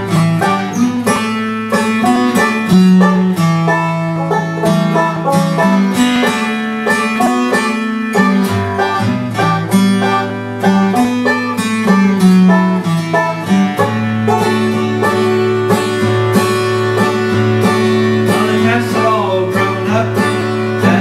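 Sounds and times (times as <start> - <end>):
acoustic guitar strumming: 0.0 - 21.0
banjo picking fast notes: 0.0 - 21.0.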